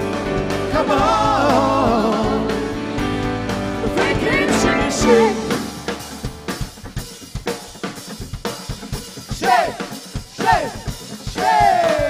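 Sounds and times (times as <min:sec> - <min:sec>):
drum kit playing: 0:00.0 - 0:12.0
sliding falling notes: 0:03.9 - 0:06.9.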